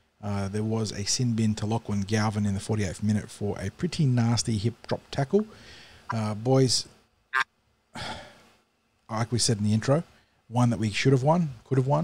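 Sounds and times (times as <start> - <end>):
man sighing: 8.0 - 8.4.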